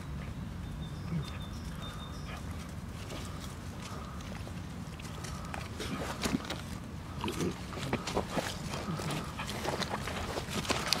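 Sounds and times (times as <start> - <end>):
puppies grunting: 1.0 - 11.0
puppies scampering over leaves: 1.1 - 11.0.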